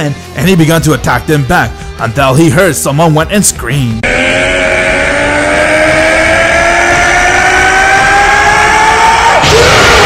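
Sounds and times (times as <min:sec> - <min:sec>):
man screaming: 0:04.0 - 0:10.0.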